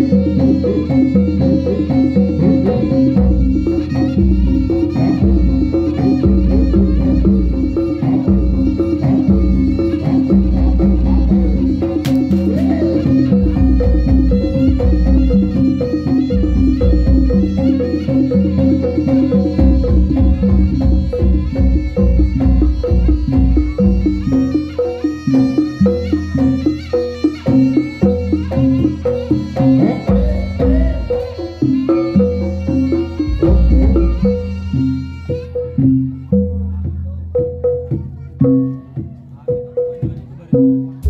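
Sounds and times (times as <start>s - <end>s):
gamelan metallophone strokes: 0.0s - 41.0s
hand drums: 0.0s - 41.0s
struck metal percussion: 0.0s - 41.0s.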